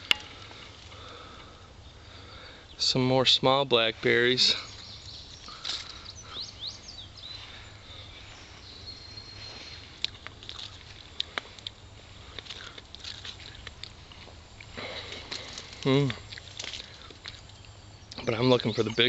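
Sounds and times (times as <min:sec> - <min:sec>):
bird chirping: 0:00.0 - 0:19.0
brambles rustling and snapping: 0:05.4 - 0:06.0, 0:09.9 - 0:18.3.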